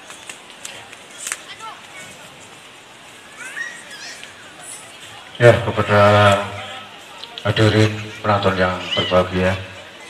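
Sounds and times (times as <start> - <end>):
man speaking: 5.4 - 9.8.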